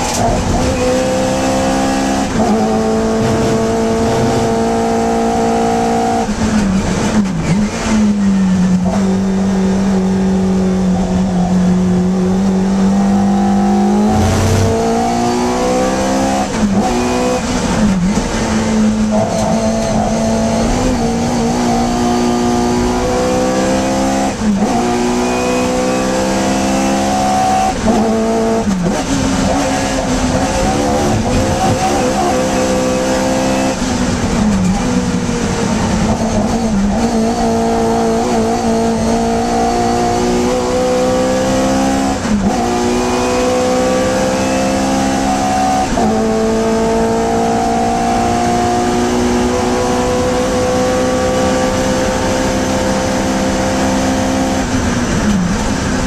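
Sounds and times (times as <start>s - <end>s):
race car engine revving: 0.0s - 56.0s.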